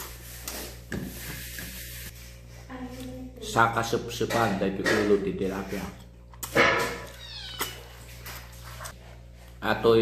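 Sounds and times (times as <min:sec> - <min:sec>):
cat meowing: 0:07.1 - 0:07.9.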